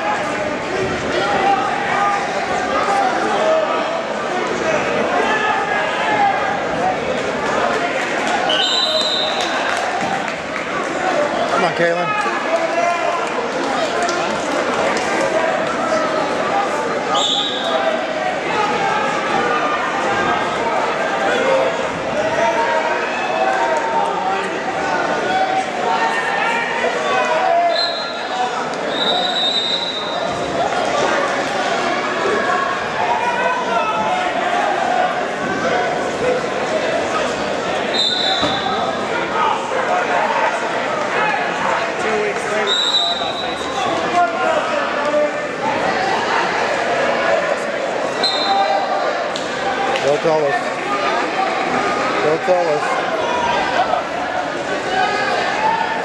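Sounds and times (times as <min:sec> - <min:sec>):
crowd talking and shouting: 0:00.0 - 0:56.0
referee's whistle blasts: 0:08.5 - 0:09.4, 0:17.1 - 0:17.7, 0:27.7 - 0:28.2, 0:28.9 - 0:30.2, 0:37.9 - 0:38.7, 0:42.7 - 0:43.7, 0:48.2 - 0:48.6.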